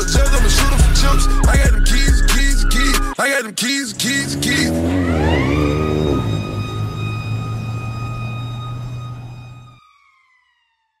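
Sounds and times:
siren-like tone sliding down: 4.4s - 11.0s.

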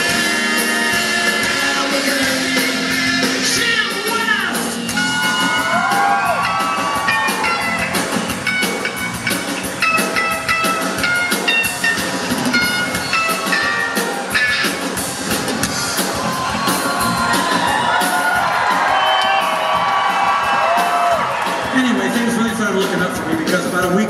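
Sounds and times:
electric guitar notes: 0.0s - 15.9s
live rock band playing: 0.0s - 24.0s.

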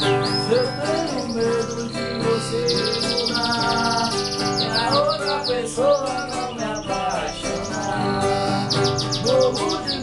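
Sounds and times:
acoustic guitar playing: 0.0s - 10.0s
man singing wordlessly: 0.0s - 10.0s
songbird singing: 0.0s - 10.0s.

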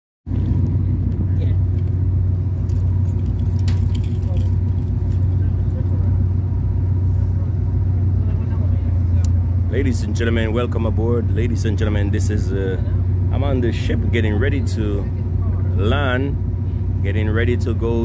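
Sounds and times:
wind rumbling on microphone: 0.3s - 10.3s
ship engines droning: 0.3s - 18.0s.

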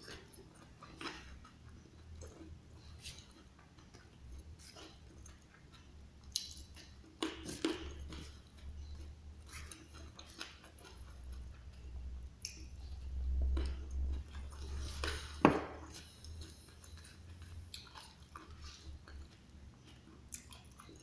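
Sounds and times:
person chewing: 0.0s - 21.0s.

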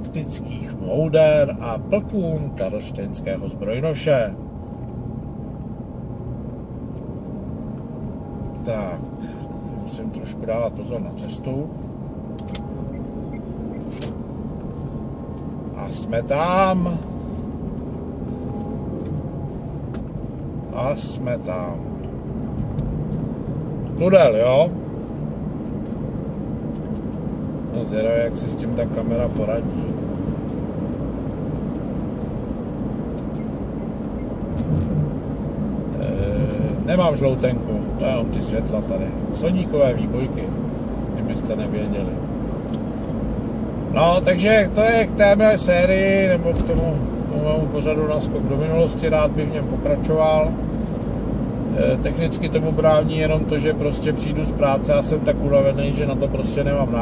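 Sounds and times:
car engine and tyres rumble: 0.0s - 57.0s.

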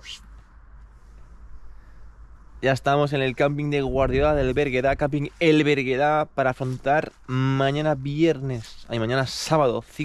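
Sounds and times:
low rumble: 0.0s - 10.0s
soft hiss: 0.0s - 10.0s.

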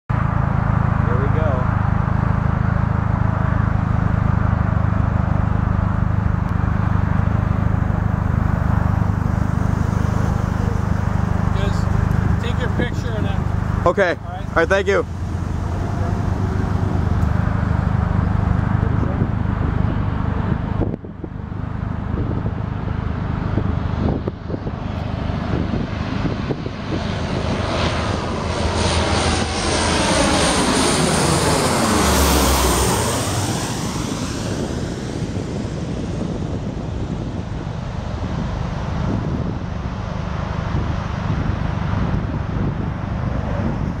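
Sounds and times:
turboprop plane passing overhead: 0.1s - 44.0s.

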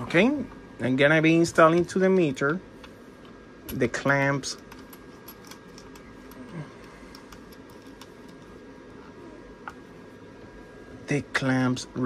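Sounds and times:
faint electronic whine: 0.0s - 12.0s.

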